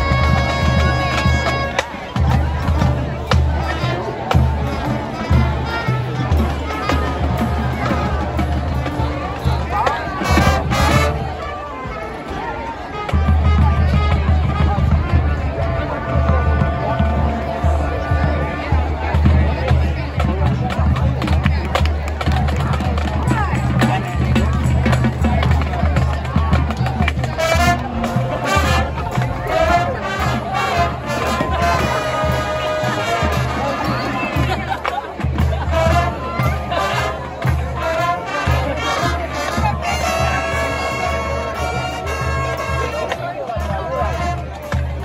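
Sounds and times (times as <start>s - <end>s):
held brass chords: 0.0s - 20.2s, 23.5s - 45.0s
marching band playing: 0.0s - 45.0s.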